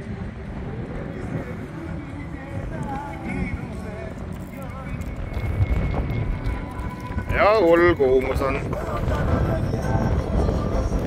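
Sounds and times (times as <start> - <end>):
faint voices: 0.0 - 11.0
wind rumble on microphone: 0.0 - 11.0.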